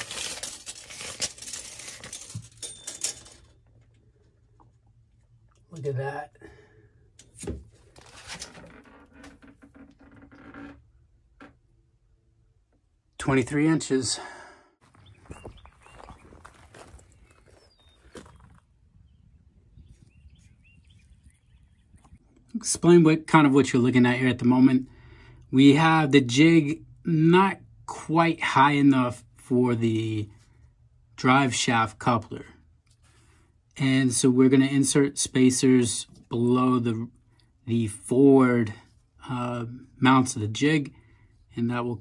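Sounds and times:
tape measure blade rattling out: 0:00.0 - 0:03.4
small birds chirping: 0:14.8 - 0:22.4.

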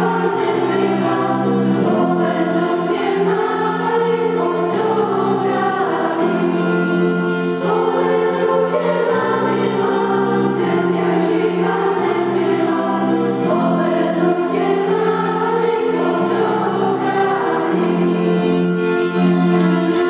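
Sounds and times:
children's choir singing: 0:00.0 - 0:20.0.

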